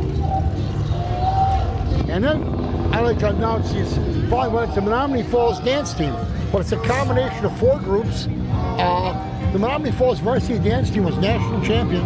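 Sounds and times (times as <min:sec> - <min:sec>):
vehicle engines rumbling: 0:00.0 - 0:12.0.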